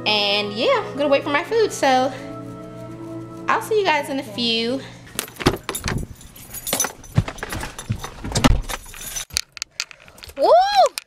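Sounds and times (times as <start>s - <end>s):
keys jangling: 5.2s - 10.4s.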